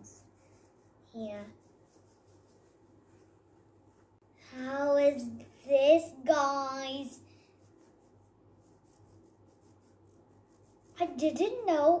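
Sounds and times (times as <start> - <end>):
stick rubbing wet mixture on paper: 0.0 - 3.2, 7.3 - 11.7
low steady hum: 0.0 - 12.0.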